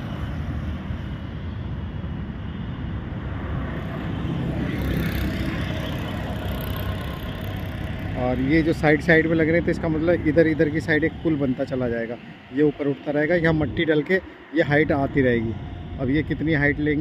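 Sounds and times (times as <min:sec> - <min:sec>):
road traffic passing: 0:00.0 - 0:17.0.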